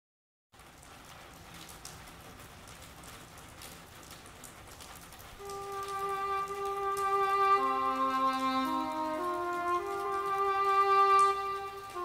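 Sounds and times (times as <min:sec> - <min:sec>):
rain falling on pavement: 0:00.5 - 0:12.0
held string notes: 0:05.4 - 0:12.0.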